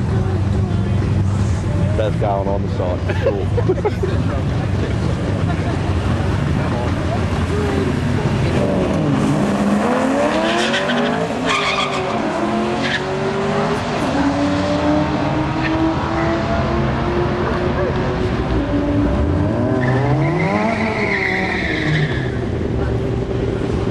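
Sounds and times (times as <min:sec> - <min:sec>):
racing car engines accelerating: 0:00.0 - 0:23.9.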